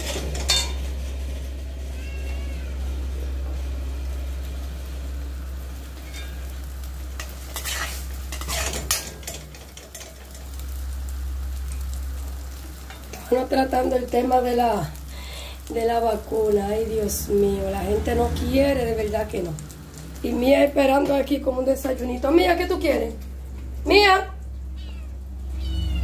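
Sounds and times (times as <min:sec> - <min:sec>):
metal spatula scraping a pan: 0:00.0 - 0:01.5, 0:06.0 - 0:06.6, 0:07.2 - 0:10.5
eggs and onion sizzling in a pan: 0:00.0 - 0:26.0.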